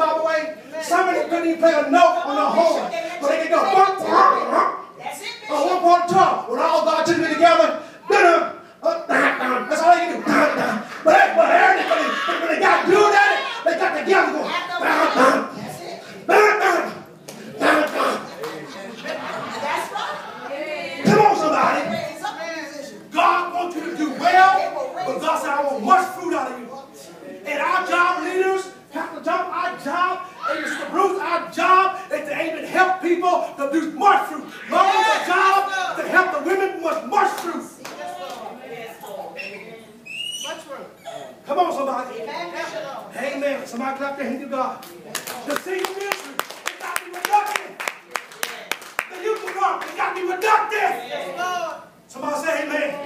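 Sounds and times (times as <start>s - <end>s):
low voices: 0.7s - 26.2s
preacher shouting: 2.0s - 15.6s, 16.3s - 18.4s, 34.0s - 37.4s.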